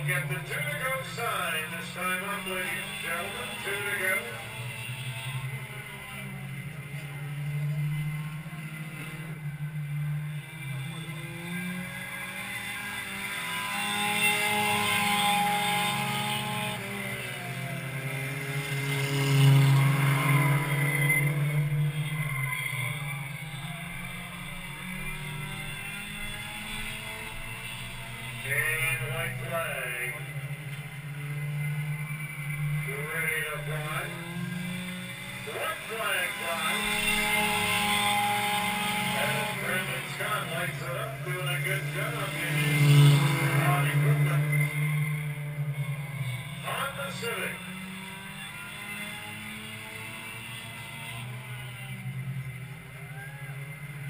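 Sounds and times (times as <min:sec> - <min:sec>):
stock car engines racing: 0:00.0 - 0:54.0.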